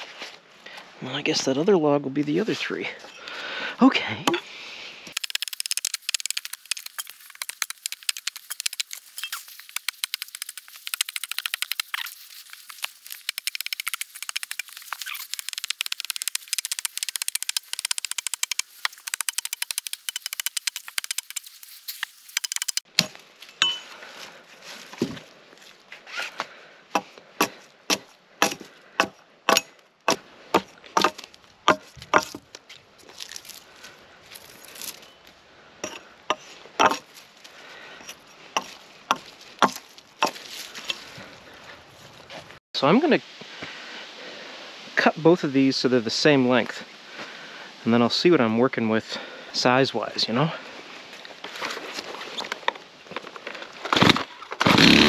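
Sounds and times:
hatchet chopping log: 5.1 - 21.4, 26.9 - 32.4, 38.6 - 40.4.

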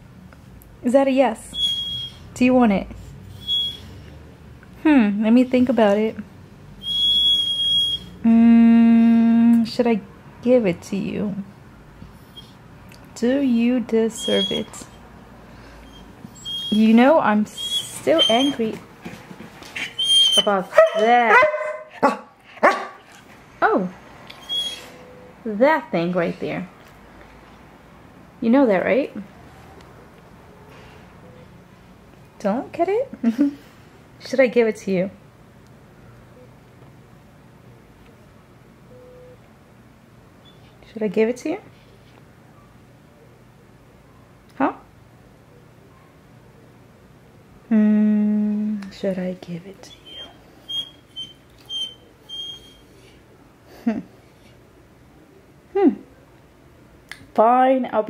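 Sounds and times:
dog whining: 1.5 - 2.3, 3.3 - 4.0, 6.8 - 8.2, 14.2 - 15.0, 15.8 - 18.8, 19.7 - 23.0, 24.4 - 25.3, 49.9 - 53.2
dog yelping: 1.6 - 2.3, 3.4 - 3.9, 6.8 - 8.1, 14.2 - 15.0, 15.8 - 16.8, 17.5 - 18.8, 19.8 - 23.0, 24.4 - 25.0, 49.9 - 53.0.

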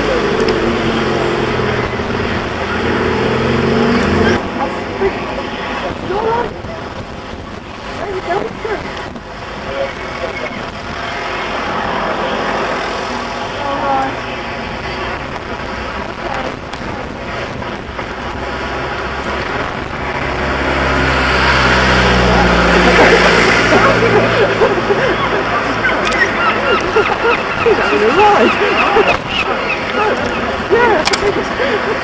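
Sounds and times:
wind on microphone: 0.2 - 32.0.

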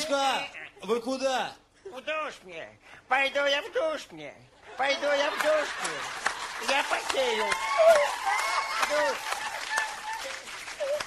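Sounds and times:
studio audience applauding: 4.8 - 11.0.

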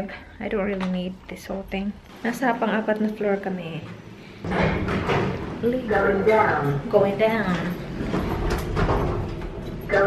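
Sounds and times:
lift machinery rumble: 4.4 - 10.0.

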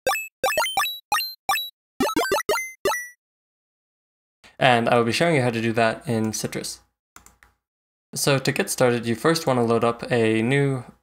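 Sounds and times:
buzzy chiptune synth blips: 0.0 - 3.2.

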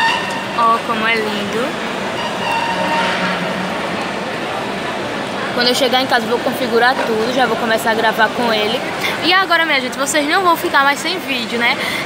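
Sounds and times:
shopping mall background rush: 0.0 - 12.0.

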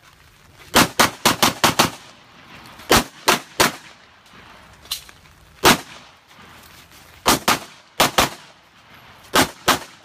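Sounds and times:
pistol shots: 2.9 - 4.0, 5.6 - 6.0, 7.2 - 8.6, 9.3 - 10.0.

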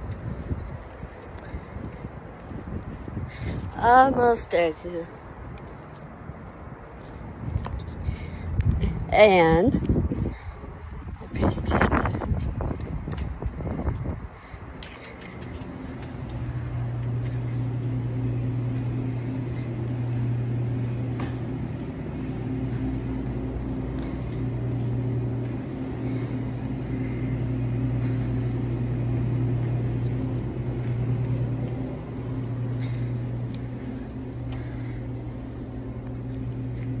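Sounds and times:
low mechanical hum: 0.0 - 37.0.

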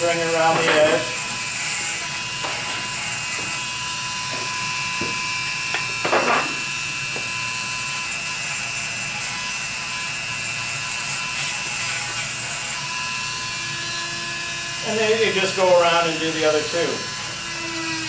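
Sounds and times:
rotary carving tool whining: 0.0 - 18.0.

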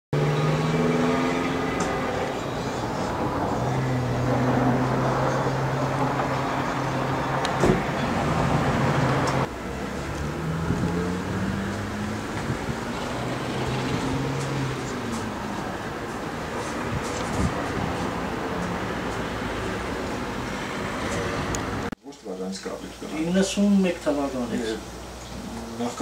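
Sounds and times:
engine running: 0.2 - 21.9
traffic noise: 0.2 - 26.0
short thump: 7.6 - 7.9.

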